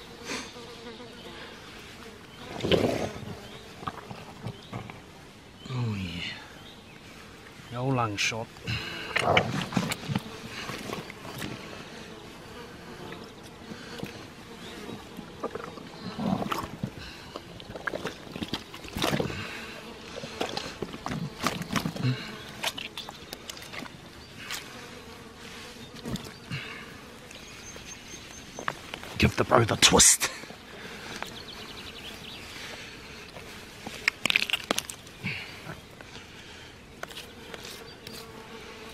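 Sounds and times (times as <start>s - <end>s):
insect buzzing: 0.0s - 38.9s
wet handling of carcass: 16.4s - 24.7s, 33.2s - 36.0s.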